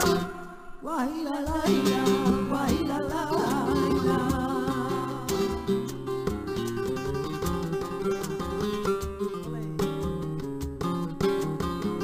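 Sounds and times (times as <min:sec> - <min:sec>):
women singing: 0:00.0 - 0:06.0
acoustic guitar: 0:00.0 - 0:12.0
steady beat: 0:01.6 - 0:06.6.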